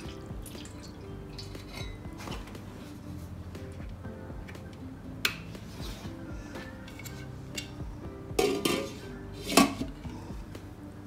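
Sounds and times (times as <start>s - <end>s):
soft background music: 0.0s - 11.0s
glass lid clanking on metal pot: 8.4s - 9.9s.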